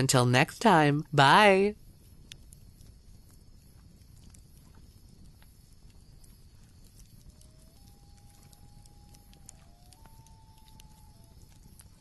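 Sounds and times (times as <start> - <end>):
campfire crackling: 0.0 - 12.0
faint whistle-like tone: 6.3 - 12.0.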